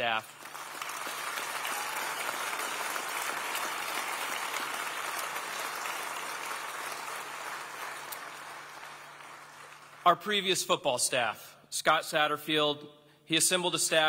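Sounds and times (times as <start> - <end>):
audience applauding: 0.0 - 10.3.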